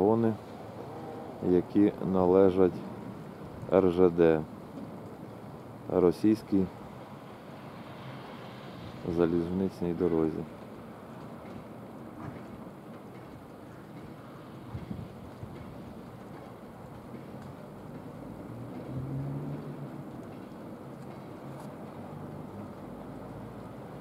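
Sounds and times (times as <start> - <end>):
freight train rumbling: 9.0 - 24.0.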